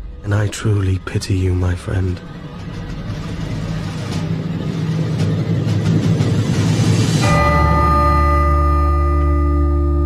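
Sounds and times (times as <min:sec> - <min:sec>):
low noisy rumble: 0:00.0 - 0:10.0.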